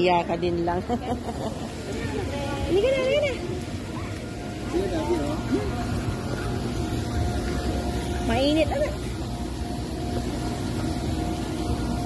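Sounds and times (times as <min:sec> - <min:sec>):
faint constant hum: 0:00.0 - 0:12.0
low outdoor rumble: 0:00.0 - 0:12.0.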